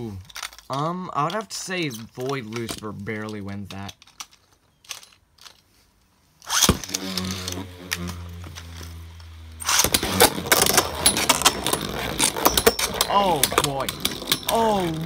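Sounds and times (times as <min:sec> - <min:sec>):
spinning top whirring hum: 0:06.5 - 0:15.0.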